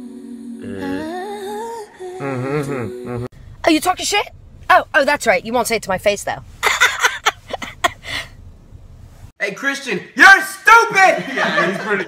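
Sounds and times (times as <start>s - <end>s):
man humming rising in pitch: 0.0s - 3.3s.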